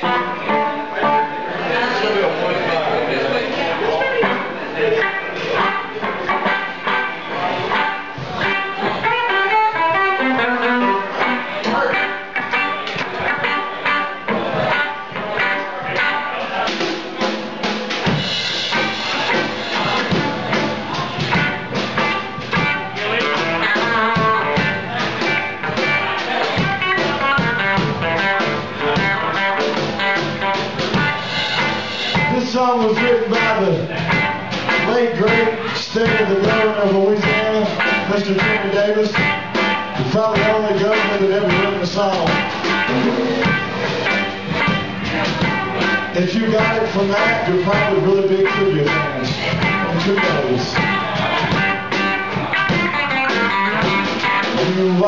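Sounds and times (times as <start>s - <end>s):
electric guitars: 0.0s - 55.0s
steady drum beat: 4.1s - 55.0s.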